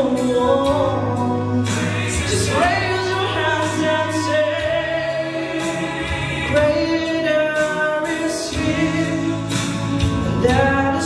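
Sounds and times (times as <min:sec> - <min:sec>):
instrumental accompaniment: 0:00.0 - 0:11.0
man singing gospel song: 0:00.0 - 0:11.0.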